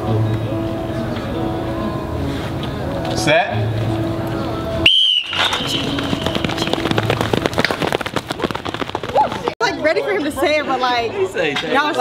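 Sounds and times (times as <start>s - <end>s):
high whistle-like start tone: 4.8s - 6.0s
sprinters' footfalls on track: 5.3s - 9.6s.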